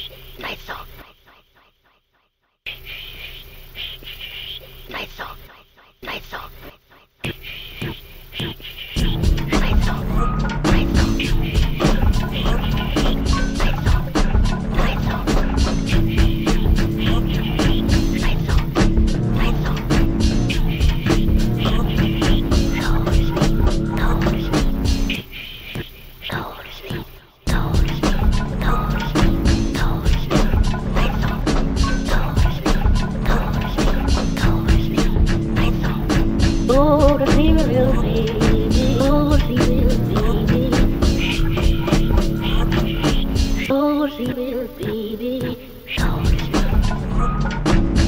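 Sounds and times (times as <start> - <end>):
whispered vocal in electronic track: 0.0 - 48.0
person whispering: 0.4 - 2.1, 2.7 - 10.1, 25.2 - 27.3
looped electronic layer: 7.2 - 48.0
music beat: 7.2 - 48.0
evenly spaced electronic pulses: 7.3 - 48.0.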